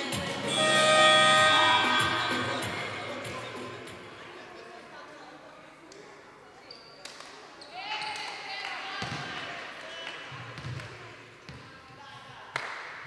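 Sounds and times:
players shouting calls: 0.4 - 3.6.

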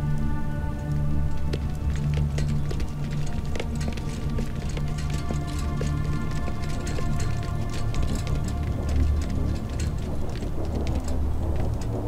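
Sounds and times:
faint ticks: 0.0 - 12.0
low rumbling drone: 0.0 - 12.0.

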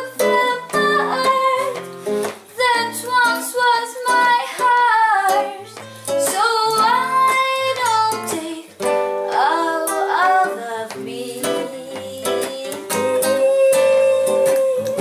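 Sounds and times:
classical guitar chords: 0.0 - 15.0
woman singing: 0.0 - 15.0.

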